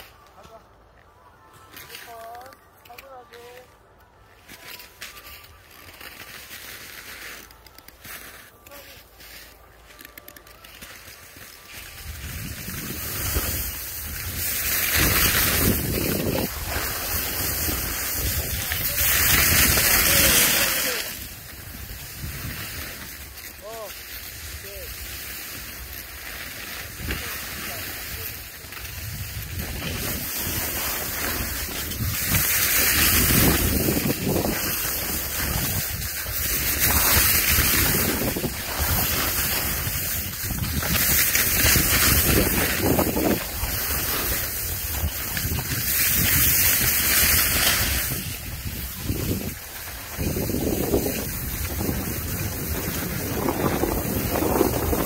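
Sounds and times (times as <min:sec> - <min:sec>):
skis scraping over snow: 0:00.0 - 0:55.0
wind on microphone: 0:11.8 - 0:23.1, 0:28.8 - 0:55.0.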